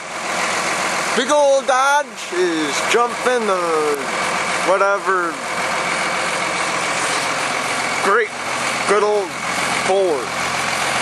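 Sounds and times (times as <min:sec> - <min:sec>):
pickup engine idling: 0:00.0 - 0:11.0.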